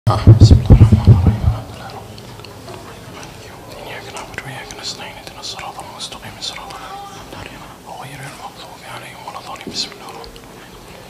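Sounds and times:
person whispering: 0:03.3 - 0:10.9.

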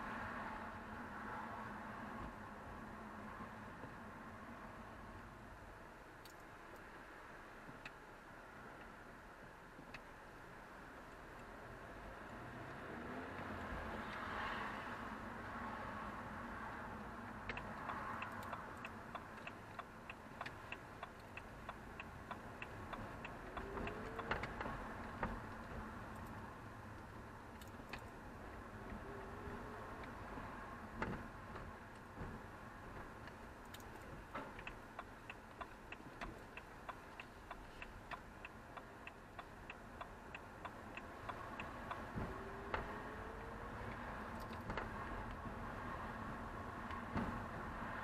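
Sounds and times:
faint low car hum: 0:00.0 - 0:48.0
road and engine noise: 0:00.0 - 0:48.0
turn signal ticking: 0:05.1 - 0:07.0, 0:07.6 - 0:14.3, 0:14.9 - 0:48.0.

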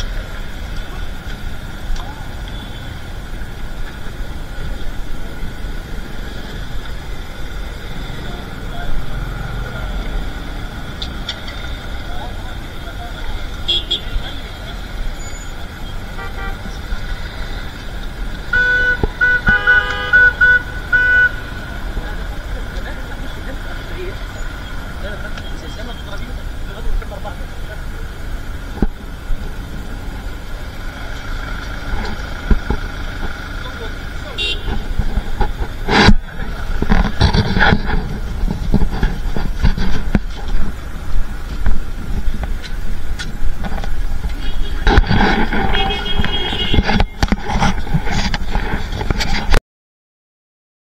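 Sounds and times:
city street traffic: 0:00.0 - 0:49.6
car horn honking: 0:02.4 - 0:03.0, 0:13.6 - 0:16.8, 0:18.4 - 0:21.7, 0:34.2 - 0:35.0, 0:44.4 - 0:47.2.

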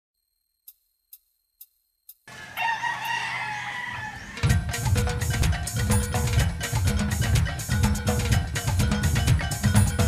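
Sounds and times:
faint ticks: 0:00.2 - 0:02.3
rooster crowing: 0:02.3 - 0:04.6.

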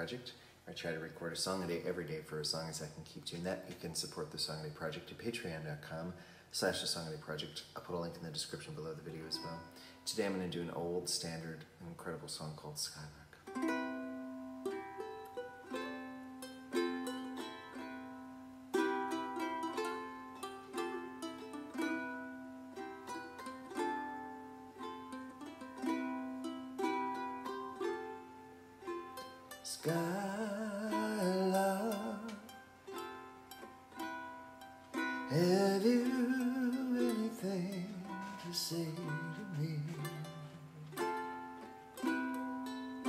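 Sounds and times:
ukulele chords: 0:07.8 - 0:11.3, 0:13.0 - 0:43.0
man singing: 0:29.6 - 0:32.6, 0:35.2 - 0:41.4.

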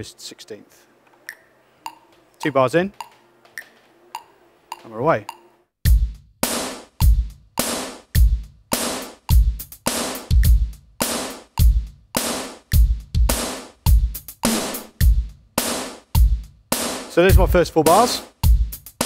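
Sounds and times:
steady electronic drum beat: 0:03.0 - 0:19.0.

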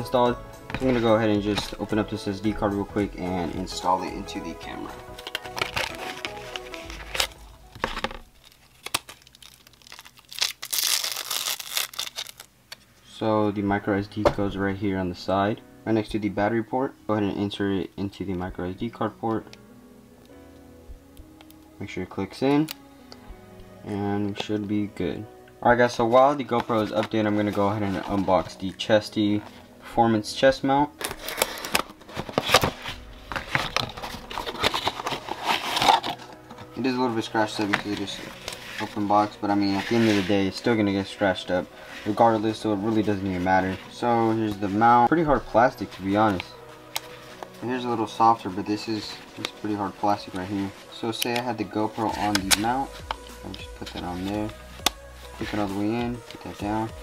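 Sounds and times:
background music: 0:00.0 - 0:57.0
plastic blister pack crinkling: 0:04.7 - 0:12.8, 0:31.0 - 0:36.8, 0:37.4 - 0:40.3
cardboard box being opened: 0:05.2 - 0:08.3, 0:31.0 - 0:36.7.

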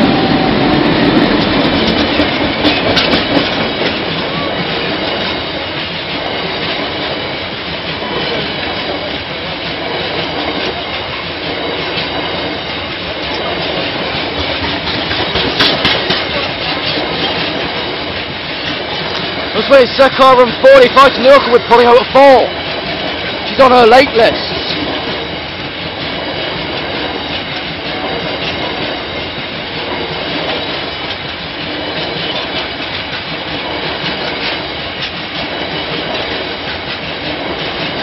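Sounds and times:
clickety-clack over rail joints: 0:00.0 - 0:38.0
train wheels rumbling on rails: 0:00.0 - 0:38.0.

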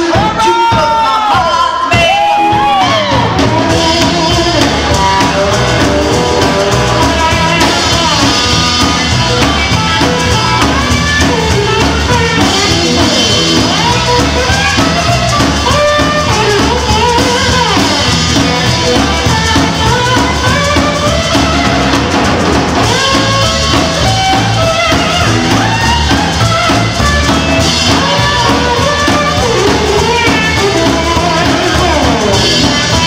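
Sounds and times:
bass guitar: 0:00.0 - 0:33.0
drum kit: 0:00.0 - 0:33.0
electric guitar notes and bends: 0:01.9 - 0:33.0.

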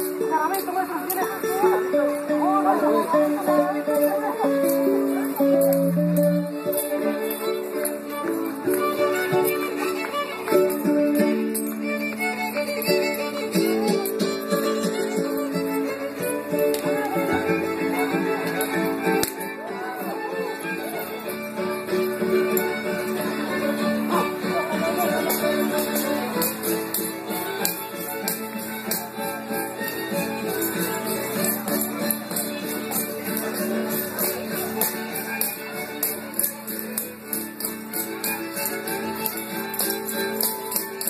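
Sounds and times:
strummed guitar: 0:00.0 - 0:41.0
violin melody: 0:00.0 - 0:41.0.

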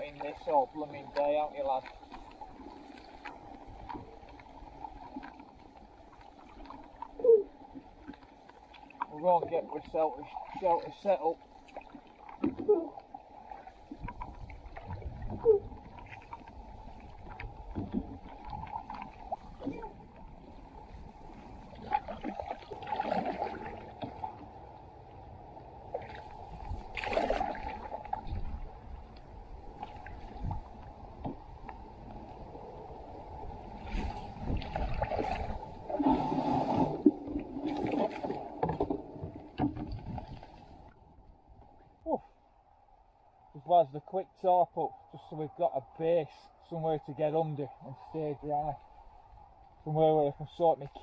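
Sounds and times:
paddle splashing in water: 0:00.0 - 0:24.7, 0:25.7 - 0:41.0
rain and wind: 0:11.5 - 0:42.2
paddle knocking against hull: 0:37.1 - 0:40.6.

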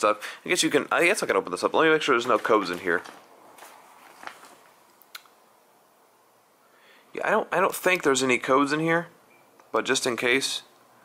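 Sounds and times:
soft handling rustle: 0:02.1 - 0:05.0.

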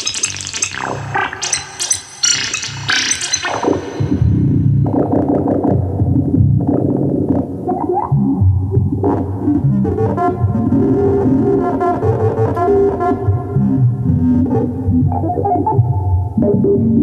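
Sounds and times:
analog synthesizer notes: 0:00.0 - 0:17.0.

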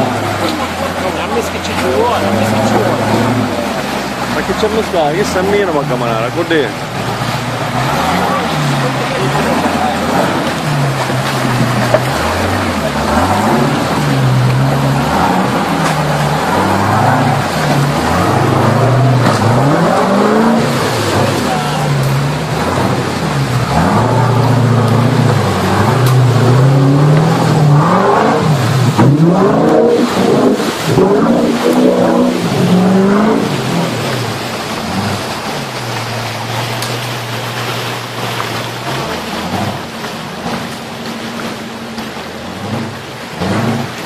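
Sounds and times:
vehicle engine revving: 0:00.0 - 0:44.0.

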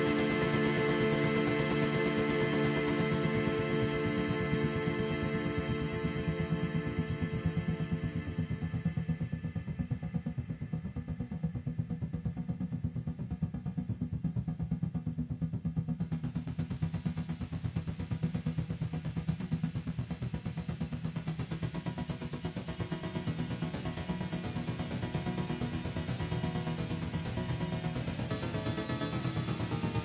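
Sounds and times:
low synth drone with fast pulse: 0:00.0 - 0:30.0.

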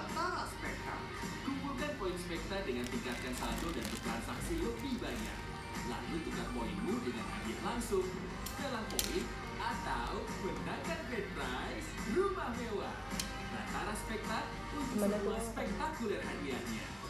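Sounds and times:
television music: 0:00.0 - 0:17.0
television voices talking: 0:00.0 - 0:17.0.

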